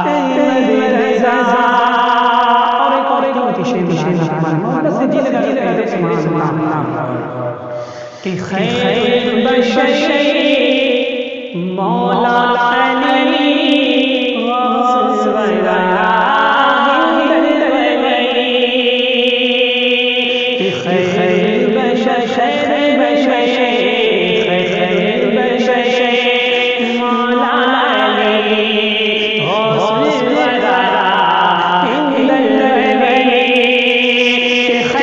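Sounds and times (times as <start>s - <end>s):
man singing devotional song: 0.0s - 35.0s.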